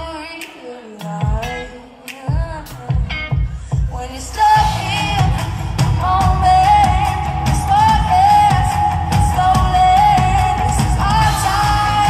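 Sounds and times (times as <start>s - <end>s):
live pop-rock band: 0.0s - 12.0s
woman singing: 0.0s - 12.0s.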